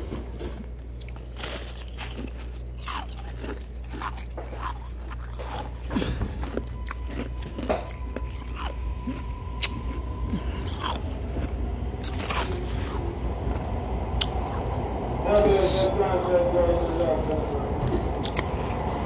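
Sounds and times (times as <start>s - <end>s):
ice being chewed: 0.4s - 18.9s.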